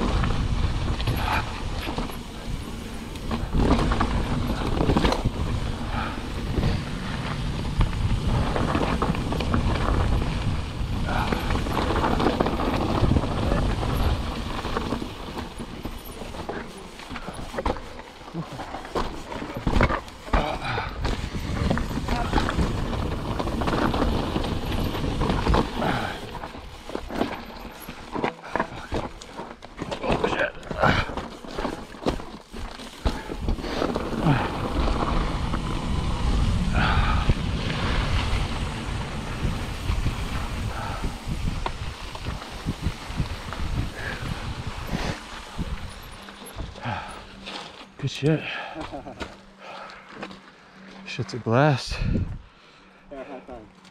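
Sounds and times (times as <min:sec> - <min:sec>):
wind buffeting microphone: 0:00.0 - 0:16.5, 0:19.5 - 0:28.0, 0:33.0 - 0:47.4, 0:51.9 - 0:52.5
bike rattling and knocking: 0:00.0 - 0:51.1
tyres crunching over stones: 0:00.0 - 0:52.4.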